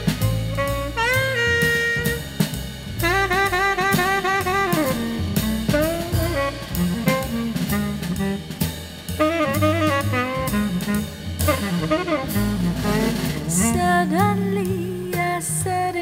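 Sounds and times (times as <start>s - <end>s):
bass: 0.0s - 16.0s
drum kit: 0.0s - 16.0s.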